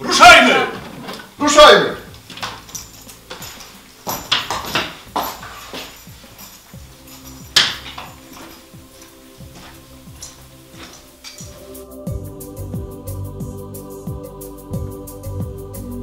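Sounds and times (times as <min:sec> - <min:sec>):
quiet background music: 0:00.0 - 0:16.0
glasses clinking on wooden table: 0:02.4 - 0:11.6.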